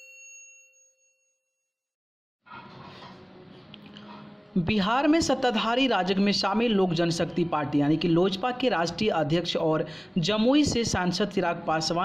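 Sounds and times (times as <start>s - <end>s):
bell ding ringing: 0.0s - 1.4s.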